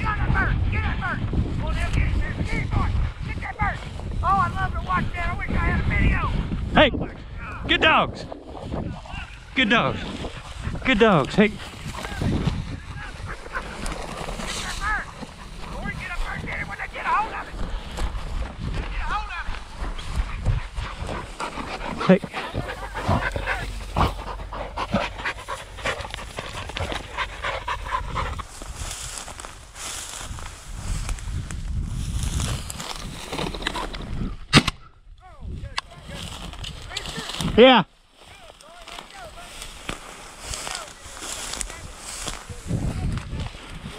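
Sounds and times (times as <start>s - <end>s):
wind rumble on microphone: 0.0s - 37.6s, 39.2s - 43.9s
dry grass rustling and crunching: 8.3s - 34.0s, 35.8s - 43.9s
dogs panting: 9.3s - 29.5s.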